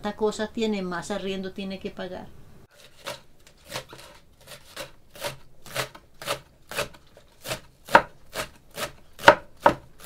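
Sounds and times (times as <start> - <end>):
knife chopping on wooden board: 2.9 - 9.9.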